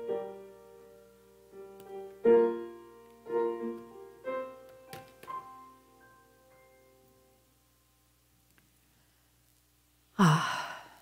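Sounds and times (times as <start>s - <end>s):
woman sighing: 10.2s - 11.0s.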